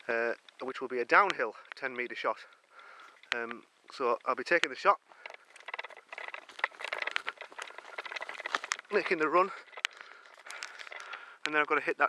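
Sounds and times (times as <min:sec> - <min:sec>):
rustling in dry undergrowth: 0:00.0 - 0:12.0.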